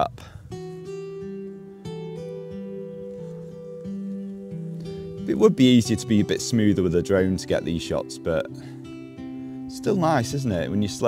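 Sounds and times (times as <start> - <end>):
acoustic guitar plucked notes: 0.0 - 11.0.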